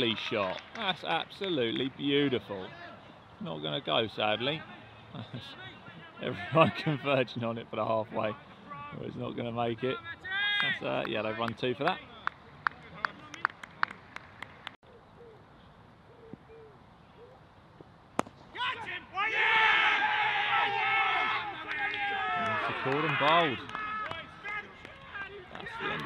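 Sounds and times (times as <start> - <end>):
fielders shouting and cheering: 0.0 - 14.0, 18.5 - 26.0
sharp claps: 12.2 - 14.8, 21.6 - 26.0.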